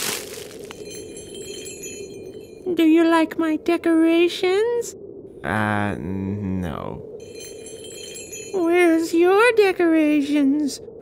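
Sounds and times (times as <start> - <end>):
glassy chime tones: 0.6 - 2.8, 7.2 - 9.2.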